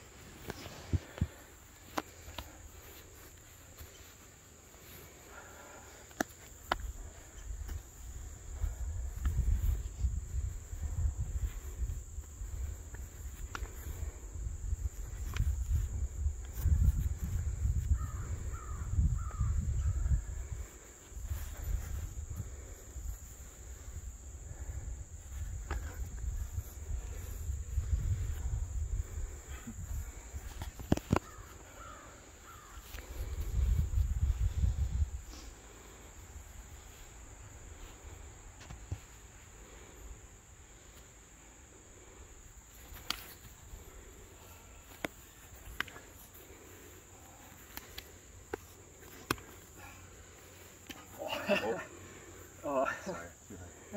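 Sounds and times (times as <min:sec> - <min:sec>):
wind rumble on microphone: 0:07.4 - 0:23.2, 0:23.8 - 0:31.0, 0:32.6 - 0:35.4.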